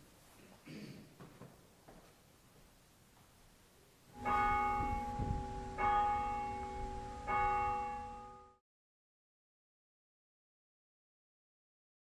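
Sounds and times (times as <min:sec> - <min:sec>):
church bell ringing: 0:04.1 - 0:08.6.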